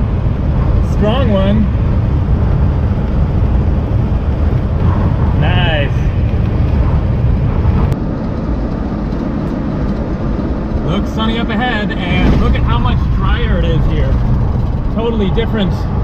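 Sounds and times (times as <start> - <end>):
road and engine rumble inside car: 0.0 - 16.0.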